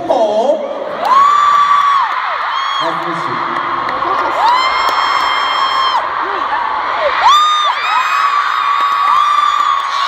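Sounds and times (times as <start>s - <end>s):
crowd screaming and cheering: 0.7s - 10.0s.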